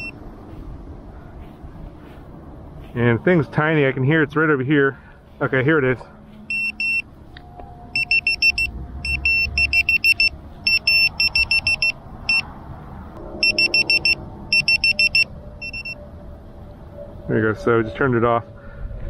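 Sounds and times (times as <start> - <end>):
alarm buzzer beeping: 6.5 - 7.1, 7.9 - 12.4, 13.3 - 16.0.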